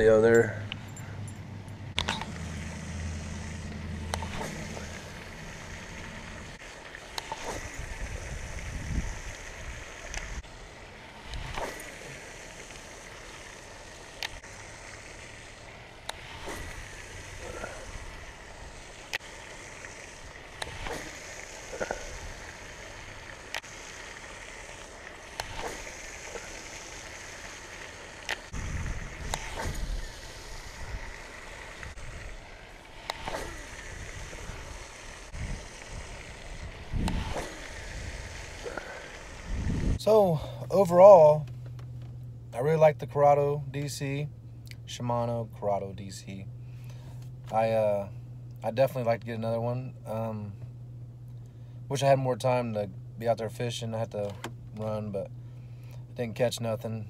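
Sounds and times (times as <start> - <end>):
low steady hum: 0.0 - 57.0
fountain water splashing: 2.0 - 41.5.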